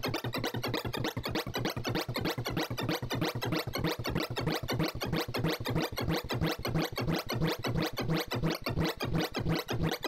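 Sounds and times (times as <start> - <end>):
rapid synthesized blips: 0.0 - 10.0.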